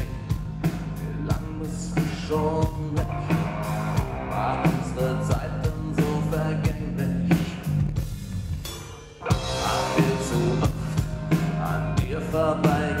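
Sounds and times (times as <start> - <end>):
man singing: 0.0 - 7.8, 9.2 - 13.0
drum kit beat: 0.0 - 13.0
keyboards: 0.0 - 13.0
live rock band: 0.0 - 13.0.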